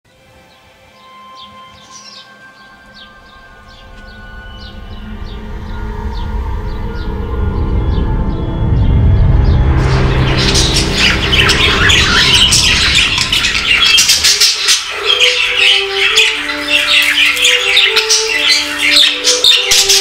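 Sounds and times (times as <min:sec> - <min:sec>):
low rumble: 0:03.2 - 0:15.0
budgerigars chattering and chirping: 0:09.8 - 0:20.0
simple melody of held notes: 0:11.6 - 0:20.0.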